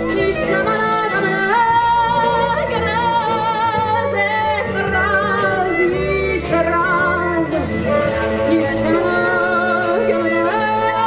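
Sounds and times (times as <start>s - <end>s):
jazz band playing: 0.0s - 11.0s
violin melody with vibrato: 0.0s - 11.0s.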